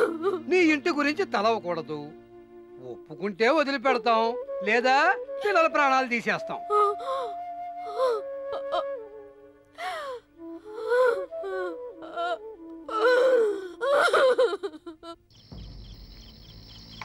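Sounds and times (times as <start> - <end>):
background music with held notes: 0.0 - 16.3.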